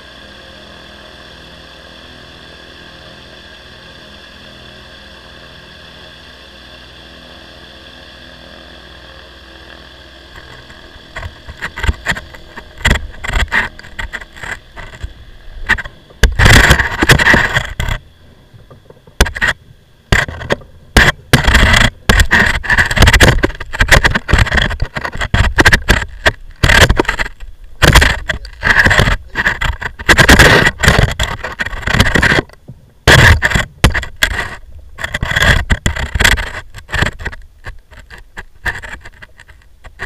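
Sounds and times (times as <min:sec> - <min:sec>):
rubbing noise on microphone: 0:10.3 - 0:18.0, 0:20.2 - 0:32.5.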